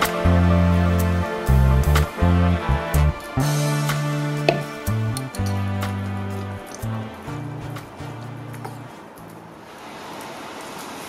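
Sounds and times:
background music bass and plucks: 0:00.0 - 0:09.5.

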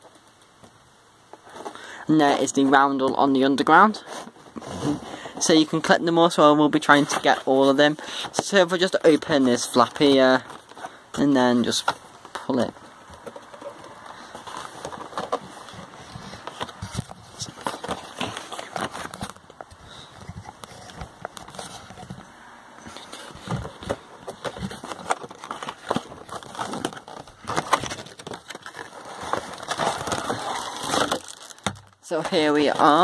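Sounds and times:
packaging rustling and crinkling: 0:01.3 - 0:33.0.

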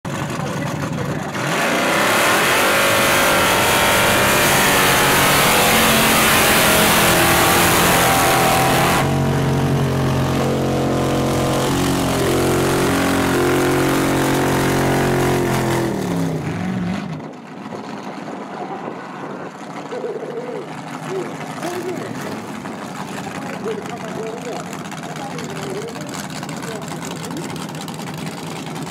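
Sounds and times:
drag car engine at full throttle: 0:00.0 - 0:28.9.

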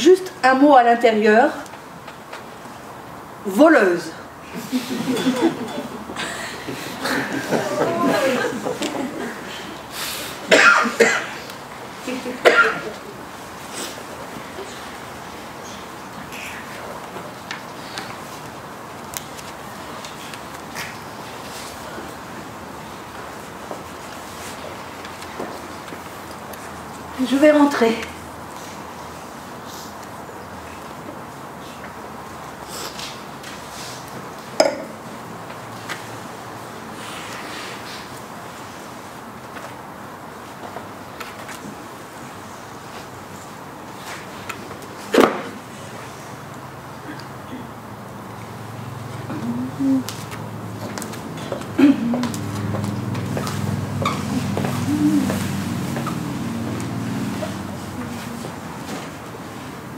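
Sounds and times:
person coughing: 0:10.5 - 0:11.4, 0:12.4 - 0:13.0, 0:51.8 - 0:52.3.

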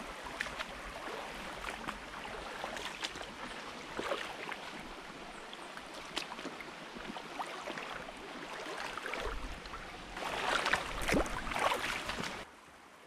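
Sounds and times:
feet splashing through water: 0:00.0 - 0:12.5
stream trickling over rocks: 0:00.0 - 0:12.5.

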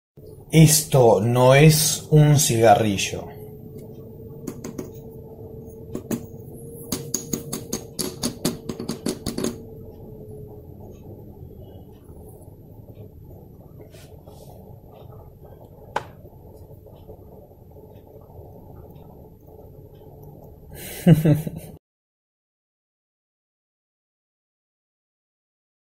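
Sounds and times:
person laughing: 0:20.8 - 0:21.8.

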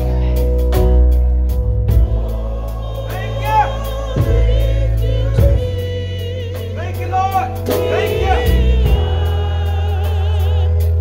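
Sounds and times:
sustained keyboard chords: 0:00.0 - 0:11.0.

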